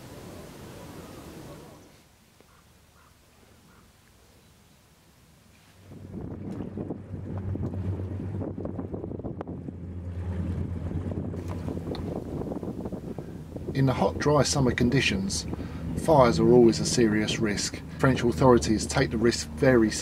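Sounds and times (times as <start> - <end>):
low engine drone: 5.7 - 20.0
wind buffeting microphone: 5.8 - 20.0.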